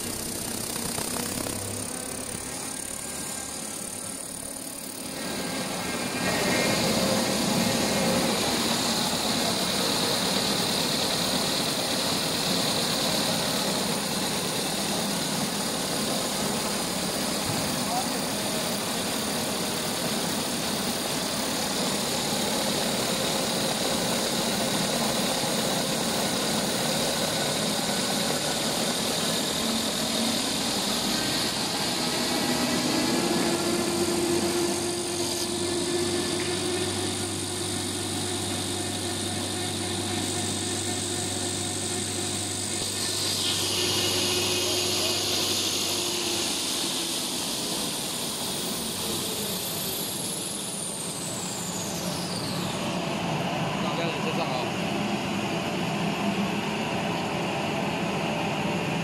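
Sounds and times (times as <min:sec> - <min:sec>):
faint high whine: 0:00.0 - 0:59.0
machine humming and hissing: 0:00.0 - 0:59.0.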